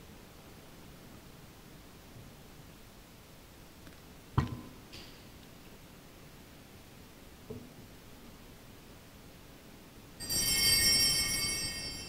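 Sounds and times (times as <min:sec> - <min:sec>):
bell-like chime ringing: 0:10.2 - 0:12.0.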